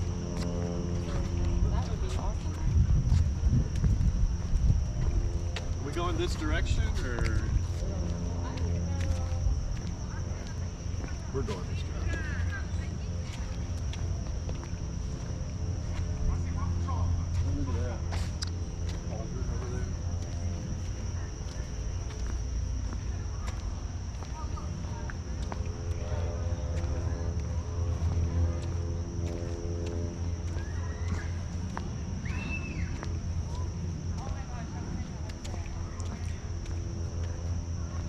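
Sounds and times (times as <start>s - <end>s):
faint distant voices: 0.0s - 38.0s
high-pitched insect drone: 0.0s - 38.0s
light footsteps: 0.0s - 38.0s
low steady rumble: 0.0s - 38.0s.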